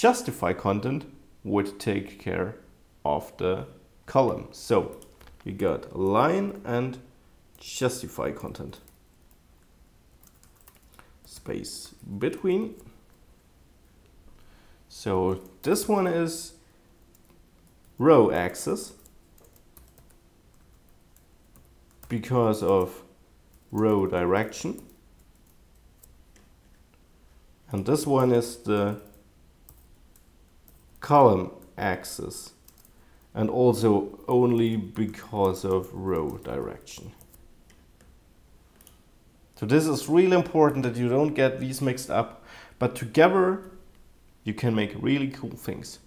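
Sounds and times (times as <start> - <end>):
faint keystrokes on a keyboard: 4.3 - 5.6, 8.5 - 13.2, 17.0 - 18.1, 18.9 - 22.9, 32.5 - 33.3, 34.5 - 39.1.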